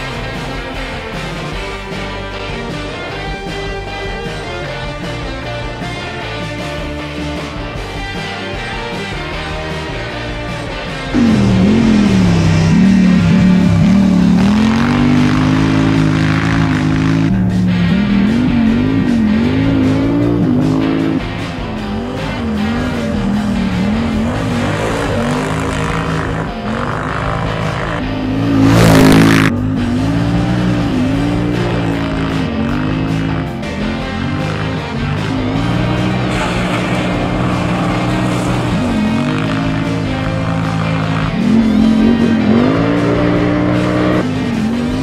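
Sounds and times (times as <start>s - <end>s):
quad engine revving: 0.0s - 45.0s
loud rush of noise: 11.1s - 20.2s, 34.8s - 43.3s.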